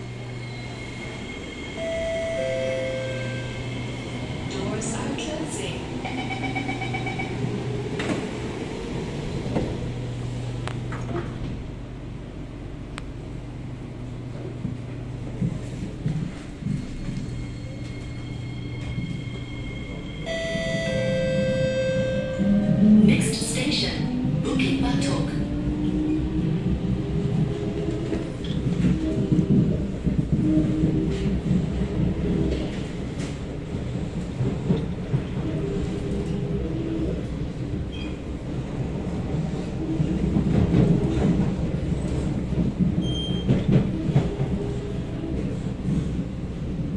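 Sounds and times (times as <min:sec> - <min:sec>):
train humming at platform: 0:00.0 - 0:46.9.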